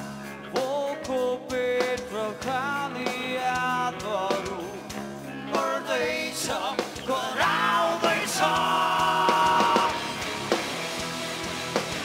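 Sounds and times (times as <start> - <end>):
drums: 0.0 - 12.0
rock band playing live: 0.0 - 12.0.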